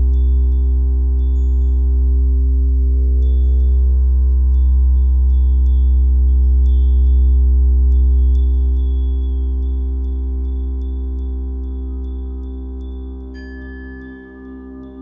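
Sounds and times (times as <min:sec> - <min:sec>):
high chime-like tinkling notes: 0:00.0 - 0:15.0
low drone with held tones: 0:00.0 - 0:15.0.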